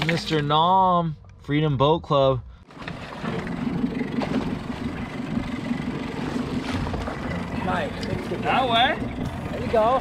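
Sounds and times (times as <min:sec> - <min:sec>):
wind: 0:00.0 - 0:10.0
boat engine idling: 0:02.6 - 0:10.0
sea noise: 0:02.6 - 0:10.0.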